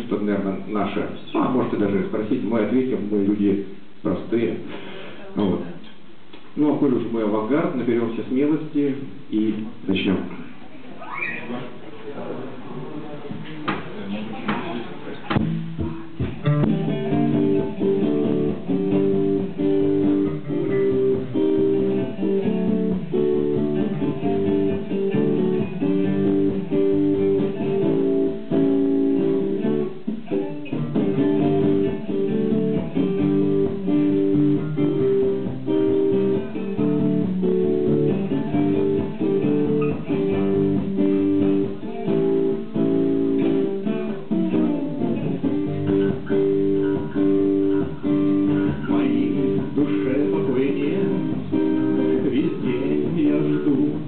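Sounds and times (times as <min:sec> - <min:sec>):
electric bass guitar playing: 0:15.2 - 0:54.0
acoustic guitar strumming: 0:15.4 - 0:54.0.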